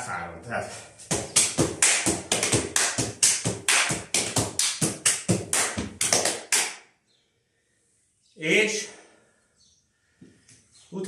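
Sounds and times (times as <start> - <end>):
hand slaps on thighs and shins: 1.1 - 6.8
hands clapping: 1.1 - 6.9.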